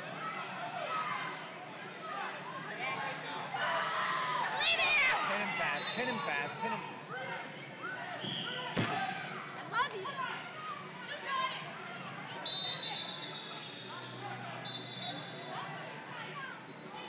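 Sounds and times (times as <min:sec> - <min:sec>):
voices talking in a hall: 0:00.0 - 0:17.0
referee's whistle: 0:05.6 - 0:06.3, 0:12.4 - 0:15.5.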